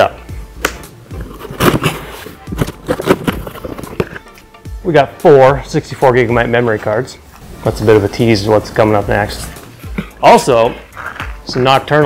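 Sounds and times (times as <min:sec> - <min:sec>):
cardboard box being opened: 0:01.2 - 0:04.3.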